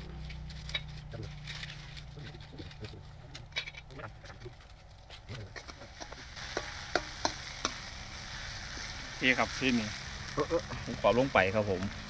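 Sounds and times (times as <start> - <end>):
chillies sizzling in hot oil: 5.5 - 12.0.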